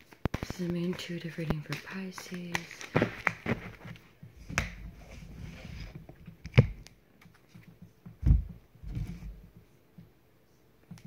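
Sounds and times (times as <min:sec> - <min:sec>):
cards rustling: 0:00.0 - 0:04.8.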